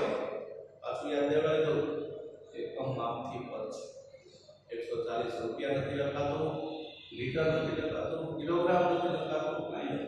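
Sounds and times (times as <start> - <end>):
man speaking: 0.8 - 3.8, 4.7 - 10.0.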